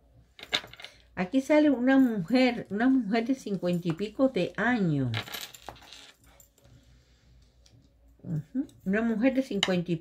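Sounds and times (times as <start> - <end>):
metallic clinking and rustle: 0.4 - 1.1, 3.4 - 6.8.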